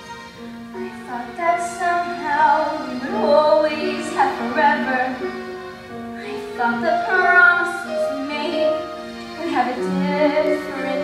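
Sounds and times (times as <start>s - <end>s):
musical accompaniment: 0.0s - 11.0s
girl singing: 6.2s - 11.0s.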